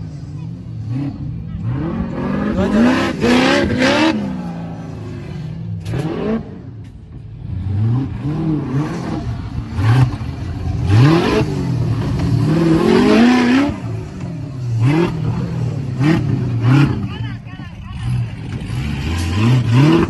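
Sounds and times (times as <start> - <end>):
buggy engine revving: 0.0 - 20.0.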